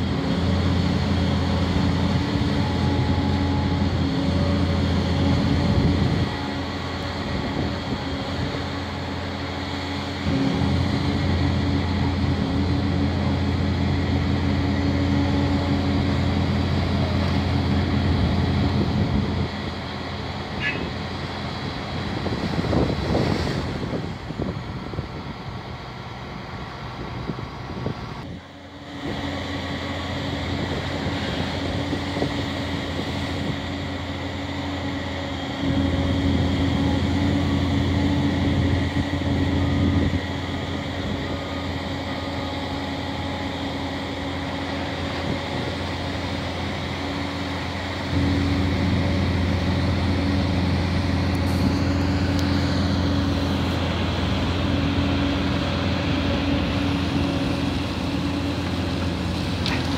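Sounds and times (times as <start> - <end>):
excavator diesel engine running: 0.0 - 59.9.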